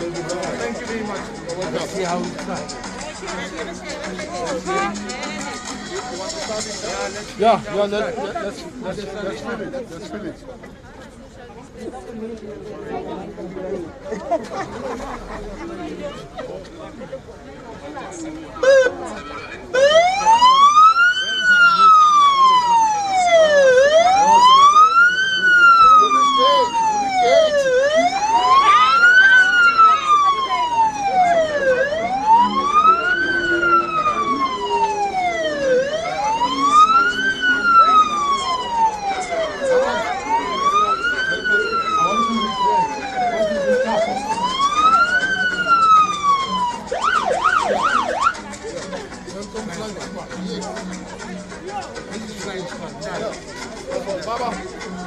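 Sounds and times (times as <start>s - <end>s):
police siren wailing and yelping: 19.8s - 48.4s.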